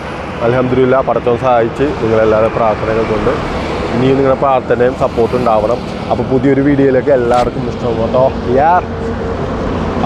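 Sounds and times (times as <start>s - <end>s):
man speaking: 0.4s - 8.9s.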